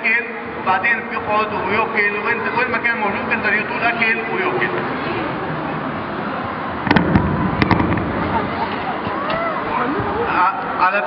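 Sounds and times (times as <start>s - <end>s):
echoing hall background noise: 0.0s - 11.0s.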